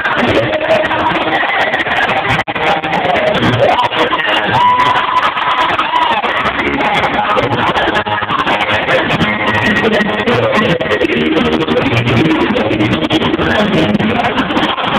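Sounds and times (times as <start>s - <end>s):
loud music with singing voice: 0.0s - 14.9s.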